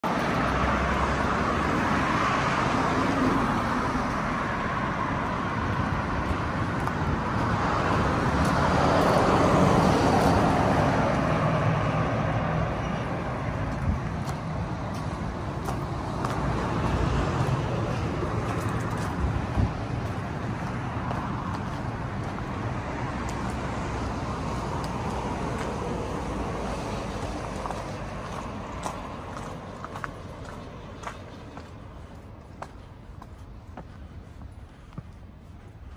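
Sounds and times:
cars passing on road: 0.0 - 35.9
footsteps on gravel: 5.2 - 11.2, 13.6 - 35.9.

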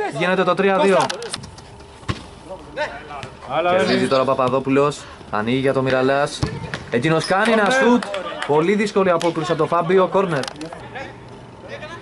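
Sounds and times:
distant players' voices: 0.0 - 12.0
ball thump: 2.0 - 2.3, 6.4 - 6.9.

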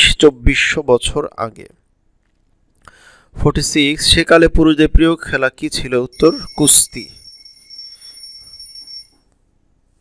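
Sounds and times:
phone ringing high electronic tone: 6.1 - 9.3.

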